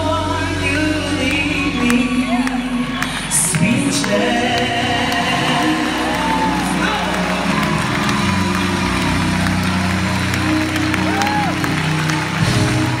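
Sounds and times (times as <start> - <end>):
live music sustained low chords: 0.0 - 13.0
audience cheering and clapping: 1.2 - 13.0.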